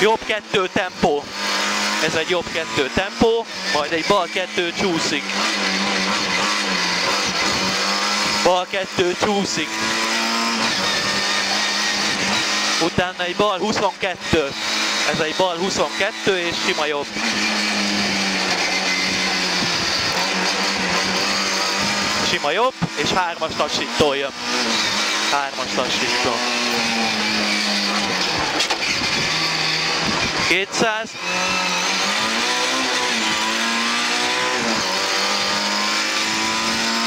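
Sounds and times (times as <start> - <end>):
car engine running: 0.0 - 37.0
road noise: 0.0 - 37.0.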